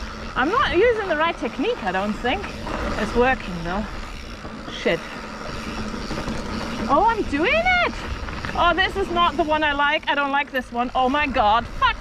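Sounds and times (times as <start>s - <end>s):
bike tyres rolling on dirt: 0.0s - 12.0s
rider exclaiming: 0.0s - 12.0s
wind rumble on microphone: 0.0s - 12.0s.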